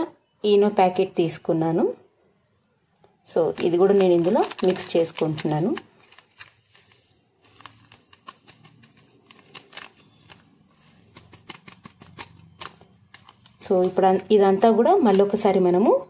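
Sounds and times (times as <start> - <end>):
plastic sachet crinkling: 3.3 - 14.3.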